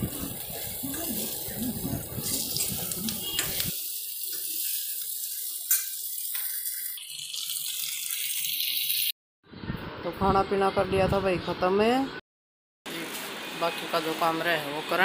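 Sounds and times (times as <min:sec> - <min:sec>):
chillies sizzling in hot oil: 0:00.0 - 0:09.2.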